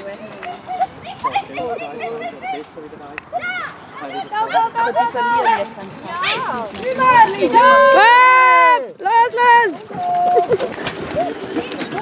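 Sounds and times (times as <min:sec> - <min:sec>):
people shouting and calling out: 0:00.5 - 0:11.5.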